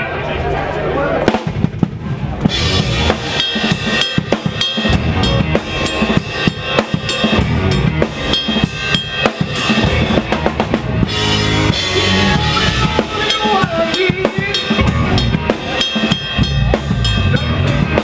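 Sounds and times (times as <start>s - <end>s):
drum kit hits: 1.3s - 18.0s
live rock band playing: 1.3s - 18.0s.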